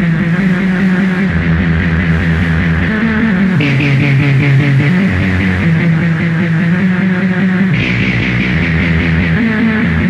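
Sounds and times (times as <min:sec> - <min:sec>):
distorted electronic drone: 0:00.0 - 0:10.0.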